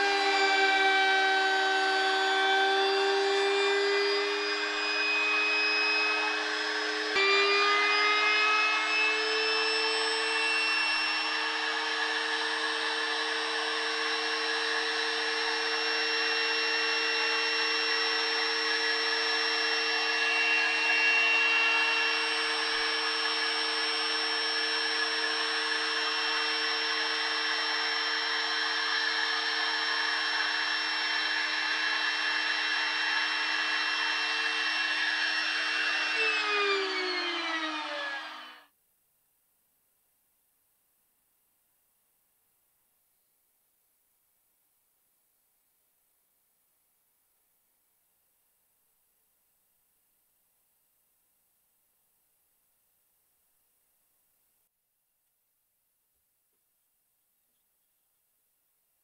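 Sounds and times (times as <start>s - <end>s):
router motor cutting wood: 0.0s - 38.7s.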